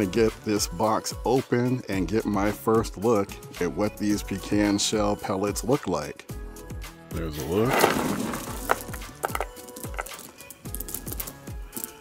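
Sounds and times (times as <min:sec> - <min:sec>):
background music with a beat: 0:00.0 - 0:12.0
pellets rustling and clattering: 0:07.6 - 0:12.0.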